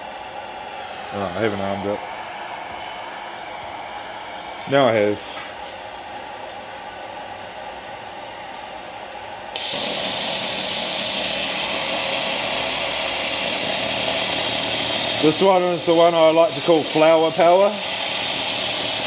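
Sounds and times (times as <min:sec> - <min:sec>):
fan running steadily: 0:00.0 - 0:19.0
laser cleaner hissing on metal: 0:09.6 - 0:19.0.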